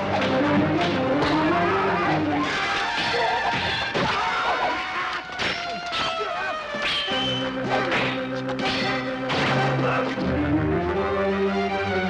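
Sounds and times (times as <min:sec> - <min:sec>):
dramatic soundtrack music: 0:00.0 - 0:12.0
sword clashes and blows: 0:05.4 - 0:09.8.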